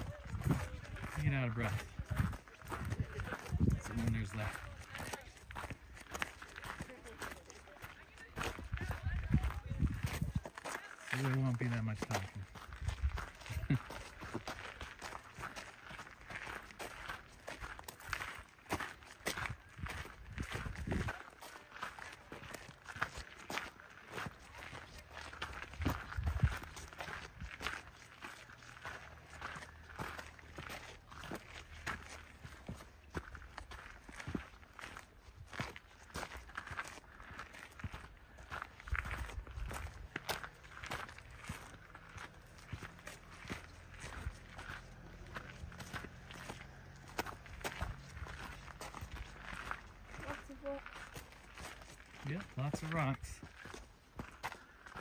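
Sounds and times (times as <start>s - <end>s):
footsteps on gravel trail: 0.0s - 55.0s.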